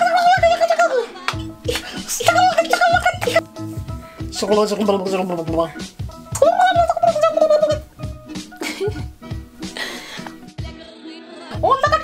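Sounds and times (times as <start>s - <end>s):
background music: 0.0s - 12.0s
woman laughing high-pitched: 8.6s - 9.1s, 11.6s - 12.0s.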